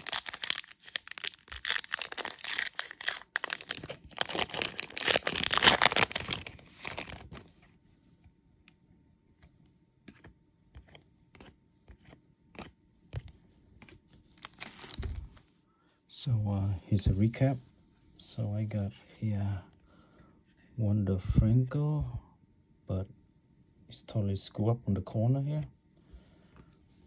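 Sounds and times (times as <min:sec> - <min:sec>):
foil wrapper tearing and crinkling: 0:00.0 - 0:07.4, 0:14.4 - 0:15.2.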